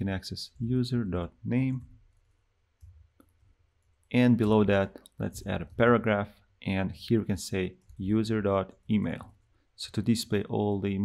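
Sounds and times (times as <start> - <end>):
faint keyboard clicks: 1.8 - 5.8, 7.7 - 9.6.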